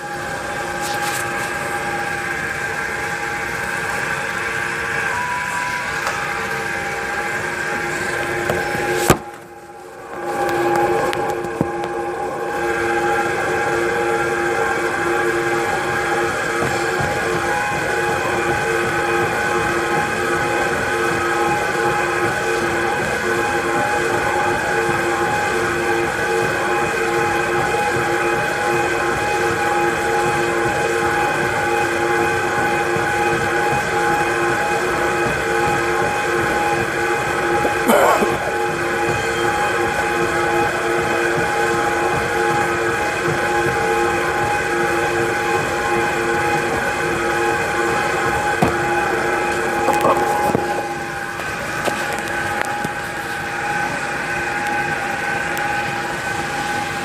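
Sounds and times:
machine running with hum: 0.0s - 57.0s.

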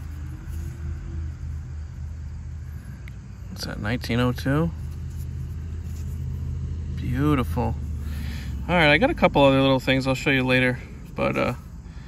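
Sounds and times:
low engine drone: 0.0s - 12.0s.

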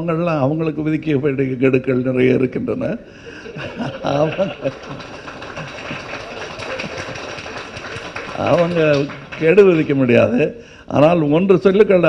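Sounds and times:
audience applause: 3.5s - 10.4s.

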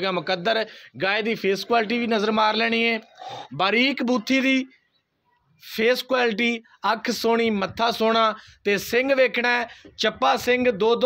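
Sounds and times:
man speaking: 0.0s - 4.8s, 5.6s - 11.0s.

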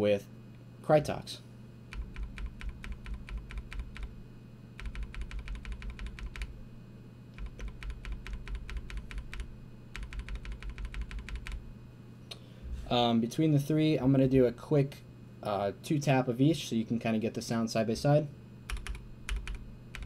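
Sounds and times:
keyboard keystroke clacks: 4.8s - 6.5s, 7.4s - 11.6s.

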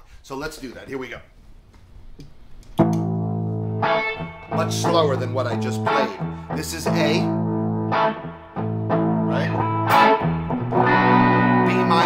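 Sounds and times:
electric guitar chord ringing: 2.8s - 12.0s.

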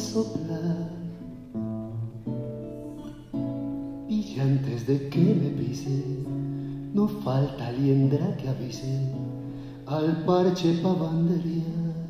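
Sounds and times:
guitar chords ringing: 0.0s - 12.0s.

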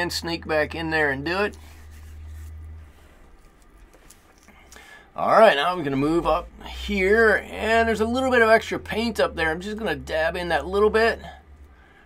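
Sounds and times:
low steady hum: 0.0s - 12.0s
quiet hiss: 0.0s - 12.0s.

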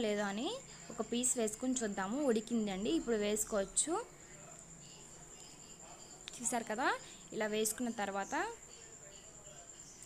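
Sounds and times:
cricket trill: 0.0s - 10.0s.

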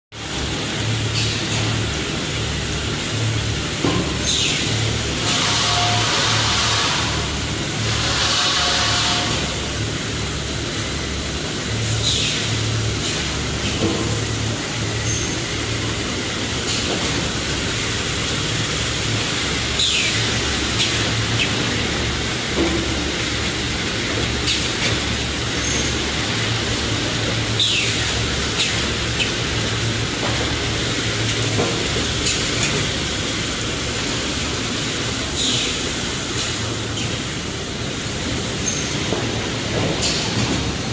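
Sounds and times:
low hum of motors: 0.2s - 40.9s.

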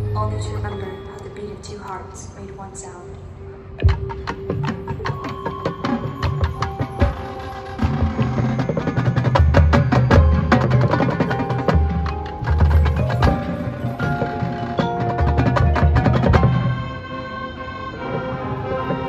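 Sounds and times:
ringing mallet percussion tones: 0.0s - 18.1s.

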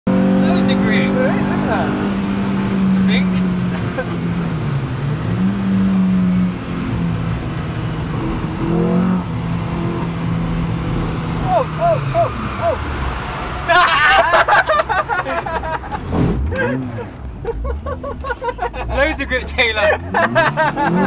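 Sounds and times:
car engine heard from inside: 0.1s - 13.8s.

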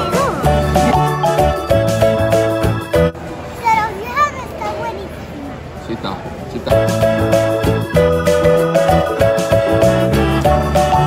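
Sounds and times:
background music: 0.0s - 3.2s, 6.7s - 11.0s
steady background noise: 0.0s - 11.0s
girl's high-pitched utterances: 3.6s - 5.3s.

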